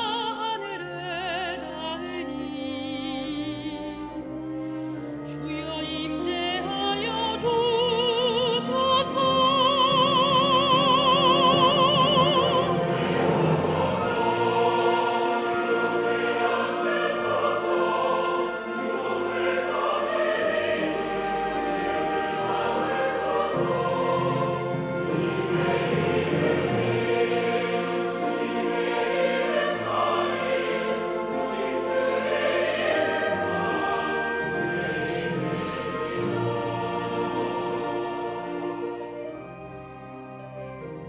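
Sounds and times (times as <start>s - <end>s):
choir singing with orchestra: 0.0s - 41.0s.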